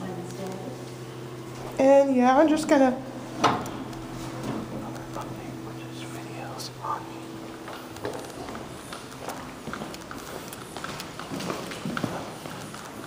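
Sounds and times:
elevator electrical hum: 0.0 - 13.0
footsteps: 7.4 - 13.0.

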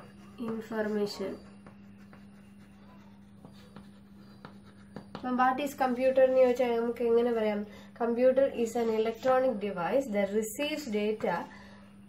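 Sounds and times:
chalk taps: 0.0 - 5.5
chalk scratching on chalkboard: 0.0 - 6.8
steady low hum: 0.0 - 12.0.

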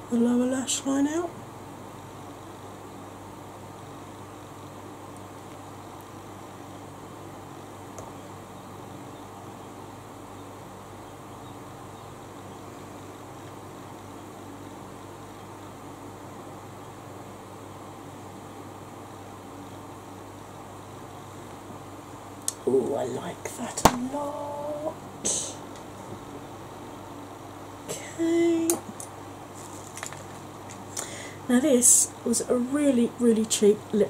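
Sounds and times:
electric fan humming: 0.0 - 34.0.

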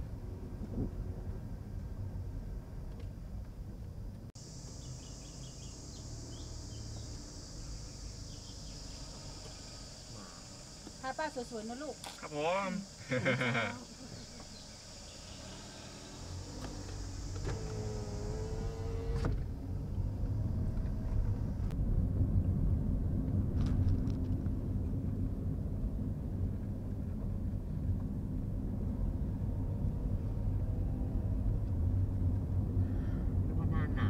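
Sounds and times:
car engine and tyre noise: 0.0 - 34.0
high insect buzz: 4.4 - 19.4.

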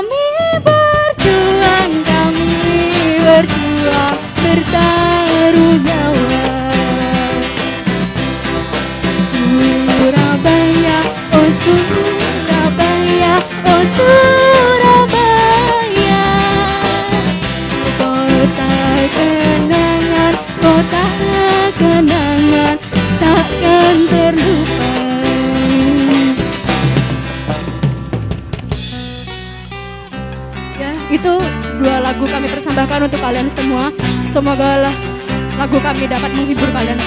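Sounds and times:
acoustic guitars strumming: 0.0 - 37.0
conga drum: 0.0 - 37.0
electric bass: 0.0 - 37.0
held melody line: 0.0 - 37.0
keyboard: 0.0 - 37.0
woman singing long notes: 18.0 - 26.5.

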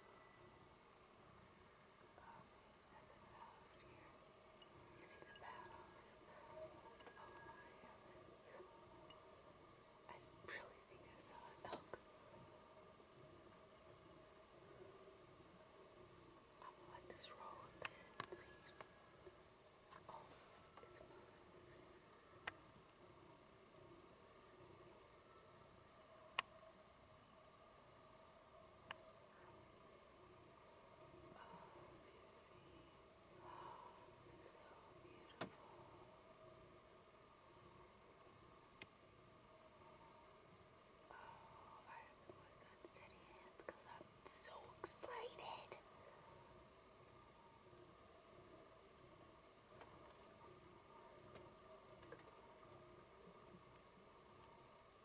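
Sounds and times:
woman whispering: 2.1 - 4.3, 4.9 - 8.9, 10.1 - 12.1, 16.6 - 18.8, 19.9 - 21.9, 31.3 - 36.0, 41.1 - 46.0
soft clicks: 38.8 - 39.0.

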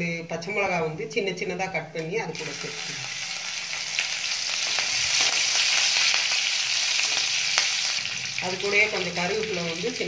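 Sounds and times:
spices sizzling in hot oil: 2.0 - 10.0.

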